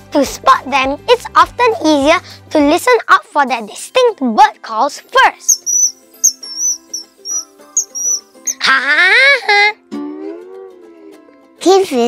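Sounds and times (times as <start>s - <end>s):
children's background music: 0.0s - 12.0s
bird chirping: 5.5s - 8.6s.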